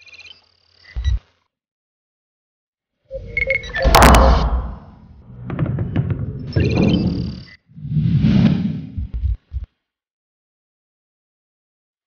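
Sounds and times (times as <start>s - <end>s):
high electronic beeps: 3.1s - 4.2s, 6.4s - 7.6s
electronic tones: 3.1s - 4.4s, 6.5s - 7.6s.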